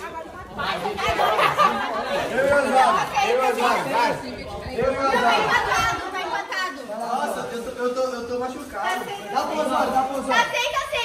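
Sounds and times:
excited group chatter: 0:00.0 - 0:11.0.

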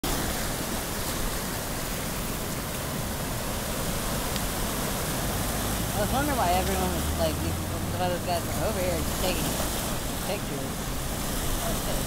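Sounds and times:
seawater washing among rocks: 0:00.0 - 0:12.0.

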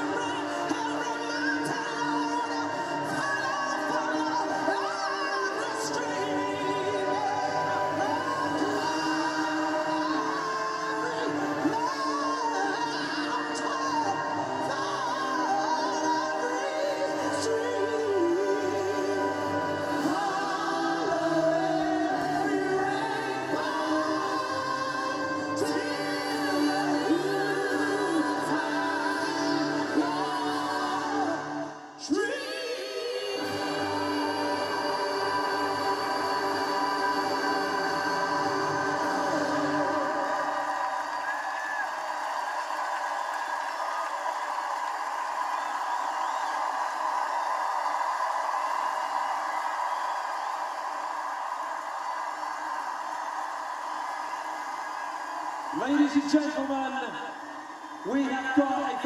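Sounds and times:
choir singing: 0:00.0 - 0:43.3.

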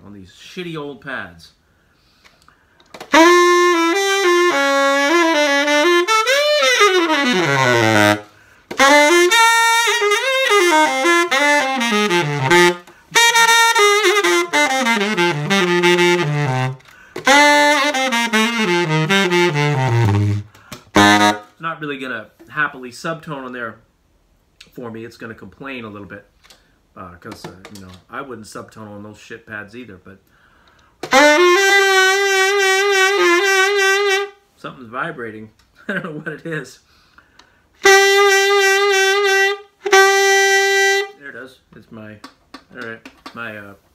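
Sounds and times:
tenor saxophone melody: 0:03.0 - 0:21.6, 0:31.0 - 0:34.4, 0:37.8 - 0:41.2.

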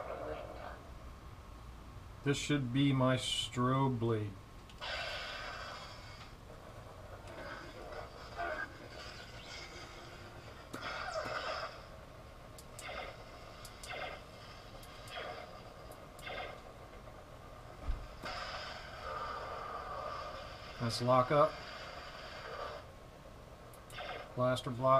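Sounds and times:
electric hum: 0:00.0 - 0:24.9
lightsaber ignition burst: 0:04.8 - 0:06.2, 0:07.4 - 0:12.0, 0:12.7 - 0:16.9, 0:18.0 - 0:22.8, 0:23.9 - 0:24.5
lightsaber swing sounds: 0:07.3 - 0:11.9, 0:12.7 - 0:13.2, 0:13.8 - 0:15.5.

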